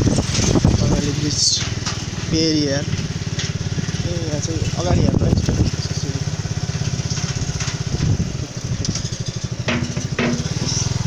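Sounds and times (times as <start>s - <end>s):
motorcycle engine running: 0.0s - 11.0s.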